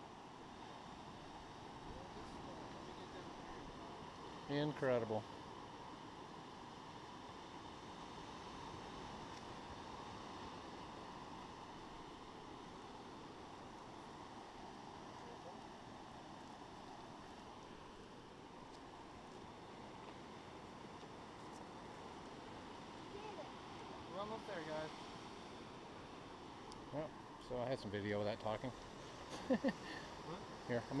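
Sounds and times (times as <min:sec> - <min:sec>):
distant surf breaking: 0:00.0 - 0:31.0.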